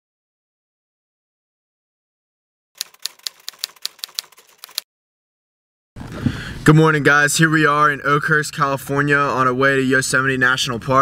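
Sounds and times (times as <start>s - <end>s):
typewriter keystroke clacks: 2.8s - 4.8s.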